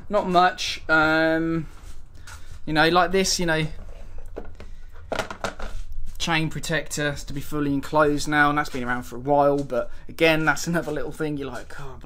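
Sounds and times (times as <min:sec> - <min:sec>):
man's voice: 0:06.2 - 0:12.0.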